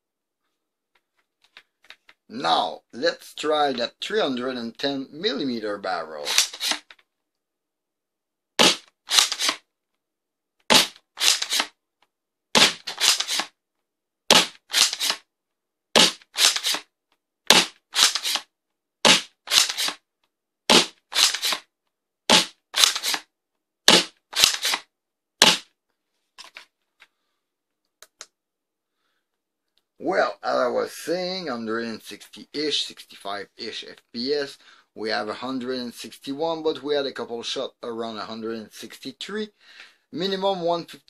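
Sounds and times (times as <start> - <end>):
dart blaster firing snap: 19.1 - 20.0, 23.9 - 24.8, 25.4 - 25.7.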